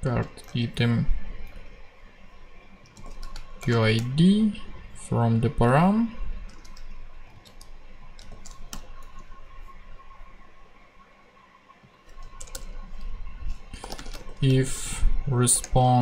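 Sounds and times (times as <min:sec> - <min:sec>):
faint high hum: 0:00.0 - 0:16.0
typing on a keyboard: 0:02.9 - 0:04.1, 0:06.5 - 0:09.2, 0:12.1 - 0:12.8, 0:13.7 - 0:14.4.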